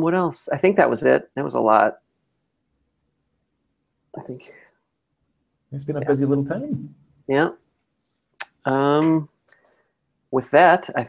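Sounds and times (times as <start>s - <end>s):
faint low hum: 5.7s - 7.4s.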